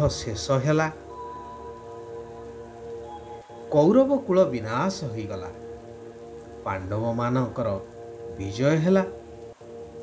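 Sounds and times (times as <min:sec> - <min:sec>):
even hiss: 0:00.0 - 0:10.0
soft synth meditation music: 0:00.0 - 0:10.0.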